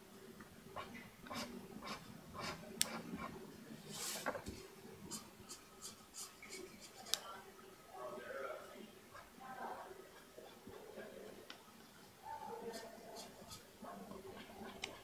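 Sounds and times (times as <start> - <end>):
pen scratching on paper: 0.8 - 3.4, 5.1 - 7.2, 12.6 - 15.0.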